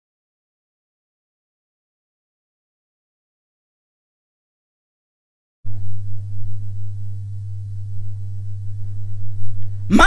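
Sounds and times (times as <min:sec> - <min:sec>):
low electrical hum: 0:05.7 - 0:10.0.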